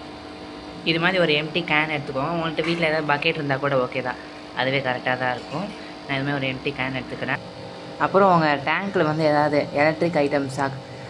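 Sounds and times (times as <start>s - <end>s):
person talking: 0.9s - 7.4s.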